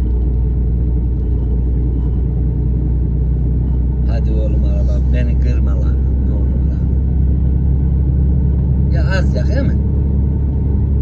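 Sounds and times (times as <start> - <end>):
lorry diesel engine rumble: 0.0 - 11.0
road noise: 0.0 - 11.0.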